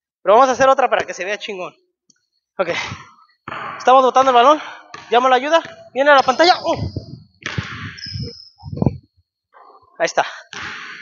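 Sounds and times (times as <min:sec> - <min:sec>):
sneaker squeak: 0:04.2 - 0:09.1.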